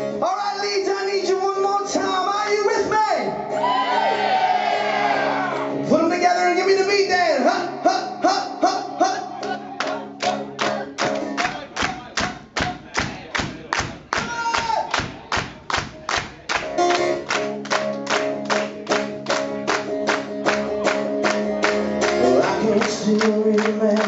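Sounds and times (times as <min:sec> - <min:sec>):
acoustic guitar strummed hard: 0:16.6 - 0:24.0.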